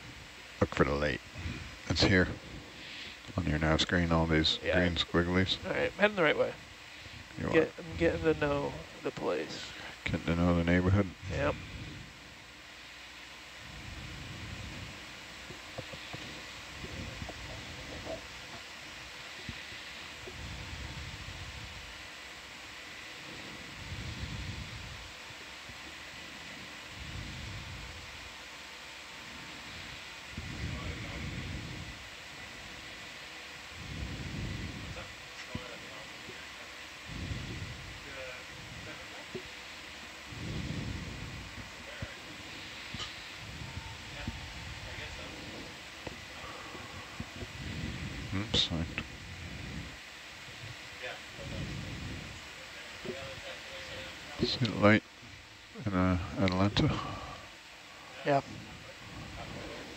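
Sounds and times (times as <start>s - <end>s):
equipment hiss: 0.0s - 59.9s
faint muffled voices: 40.3s - 49.9s, 51.0s - 55.0s.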